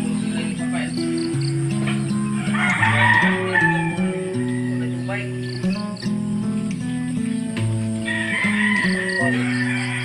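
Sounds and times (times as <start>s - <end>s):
background music: 0.0s - 10.0s
rooster crowing: 2.2s - 5.8s, 7.9s - 10.0s.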